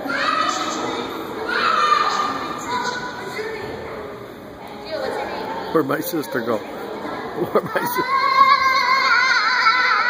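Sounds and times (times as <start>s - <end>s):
children's voices: 0.0s - 5.7s, 6.4s - 10.0s
background chatter: 0.0s - 10.0s.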